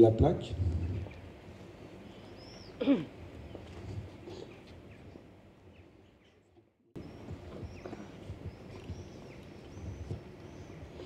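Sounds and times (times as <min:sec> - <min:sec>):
small birds chirping: 0:00.7 - 0:11.0.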